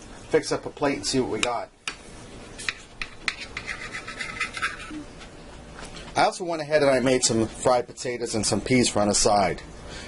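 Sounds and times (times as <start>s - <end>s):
knife sawing through roast: 2.6s - 5.0s.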